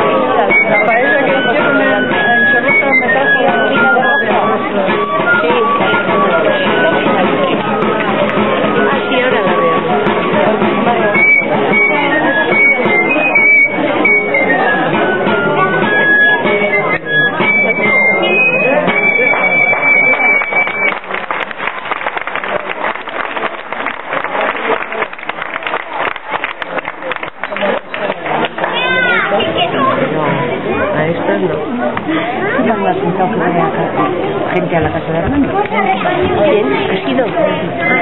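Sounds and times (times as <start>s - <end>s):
folk dance tune on wind instrument: 0.0s - 29.7s, 35.6s - 38.0s
crowd voices: 0.0s - 38.0s.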